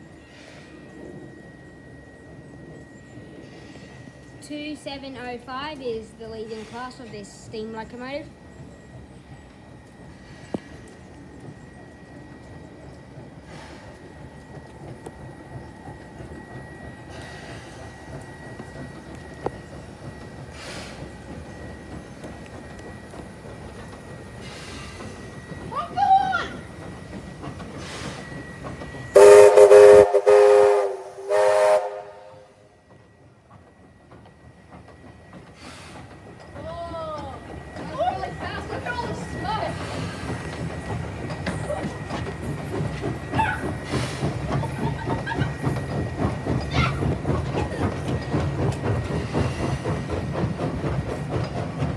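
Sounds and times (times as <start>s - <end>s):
steam locomotive rumbling: 0.0s - 51.9s
steam whistle blasts: 29.2s - 32.6s.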